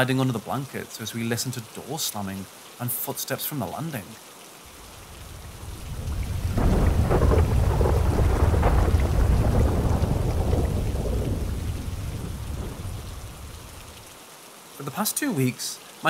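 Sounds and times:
steady rain: 0.0s - 16.0s
thunder rolling: 5.0s - 14.0s.

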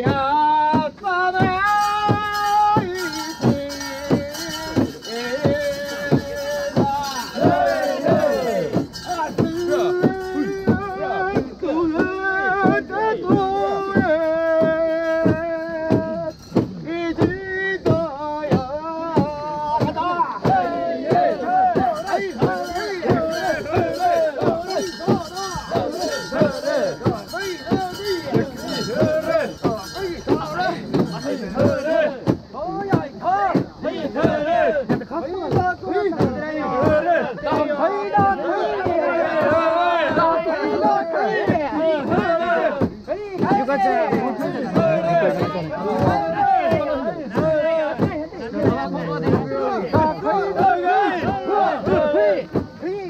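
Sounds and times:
crowd chanting in rhythm: 0.0s - 53.0s
drum steady beat: 0.0s - 53.0s
metallic clanks and jingles: 1.8s - 10.6s, 22.0s - 32.0s.

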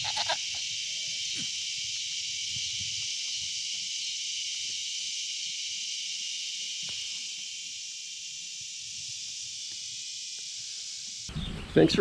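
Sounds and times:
goat kid bleating: 0.0s - 0.4s
high-pitched hiss: 0.0s - 11.3s.

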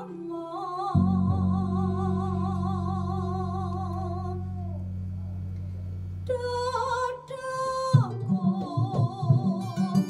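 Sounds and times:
plucked bass line: 0.9s - 6.8s, 7.9s - 10.0s
strummed small lutes: 7.7s - 10.0s.

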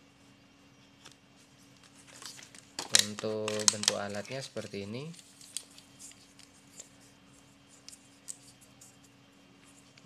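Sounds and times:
small plastic parts handled: 1.8s - 4.4s.

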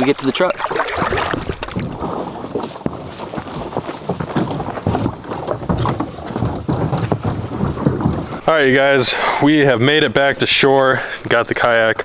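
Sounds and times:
water splashing: 0.0s - 2.3s
wind buffeting microphone: 0.0s - 9.5s.

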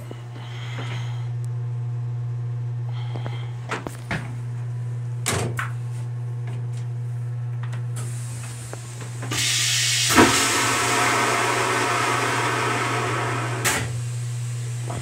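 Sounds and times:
steady low hum: 0.0s - 15.0s
toilet flush click: 8.0s - 14.2s
toilet flushing water rush: 8.0s - 15.0s.

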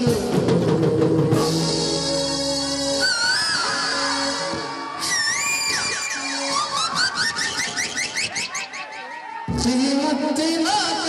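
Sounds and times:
band music: 0.0s - 11.0s
swooping warbling electronic tones: 3.1s - 9.2s.

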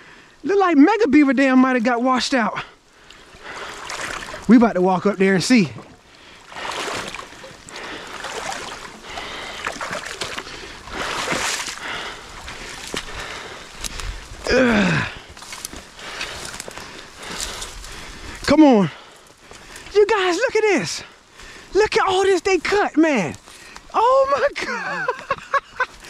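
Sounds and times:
light rain falling: 0.0s - 26.0s
footsteps through wet leaves: 6.2s - 20.3s
man exclaiming: 14.4s - 15.1s, 20.0s - 21.1s, 21.7s - 25.4s.

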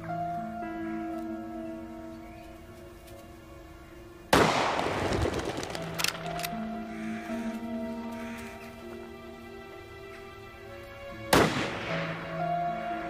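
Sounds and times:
music with held notes: 0.0s - 4.6s, 5.6s - 13.0s
rifle shot with echo: 4.3s - 6.5s, 11.3s - 12.2s
sharp clicks: 4.5s - 6.6s.

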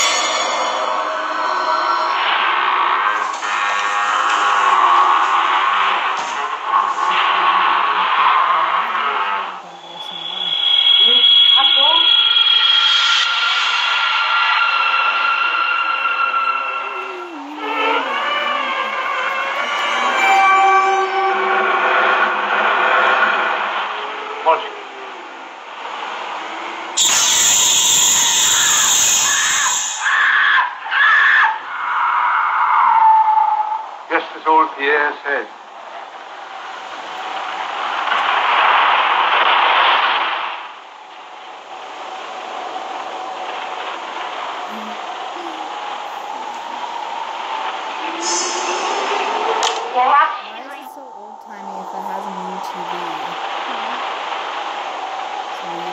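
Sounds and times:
rushing swell of noise: 0.0s - 30.0s, 35.2s - 55.9s
eerie sustained music tones: 0.0s - 30.5s, 40.8s - 55.9s.

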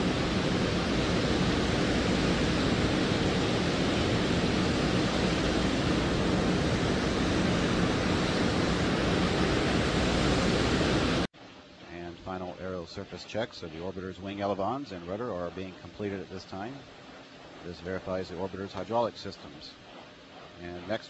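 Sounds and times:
steady rushing noise: 0.0s - 21.0s.

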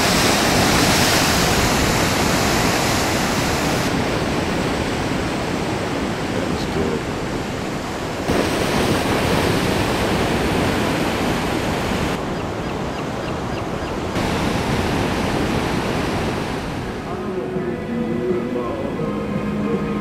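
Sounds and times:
waves breaking and washing in: 0.0s - 20.0s.

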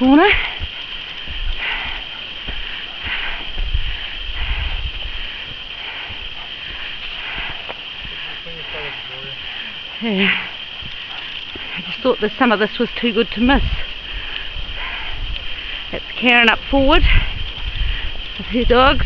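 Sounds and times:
footsteps on a bush track: 0.0s - 19.0s
low wind rumble: 0.0s - 19.0s
steady high hum: 0.0s - 19.0s.

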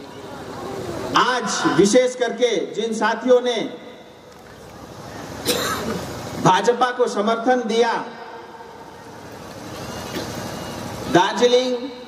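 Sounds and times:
low rumble and hiss: 0.0s - 12.0s.

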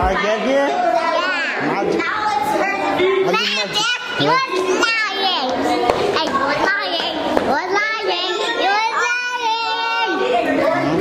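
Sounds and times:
young children calling and chattering: 0.0s - 11.0s.

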